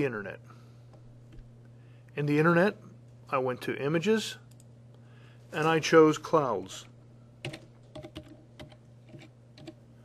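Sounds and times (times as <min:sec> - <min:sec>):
low steady hum: 0:00.0 - 0:10.0
keyboard keystrokes: 0:07.4 - 0:09.8.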